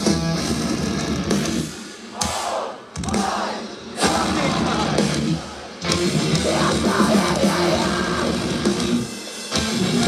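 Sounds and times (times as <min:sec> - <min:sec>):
full-band hits: 0:00.0 - 0:10.0
metal band playing: 0:00.0 - 0:10.0
crowd noise: 0:01.9 - 0:08.8.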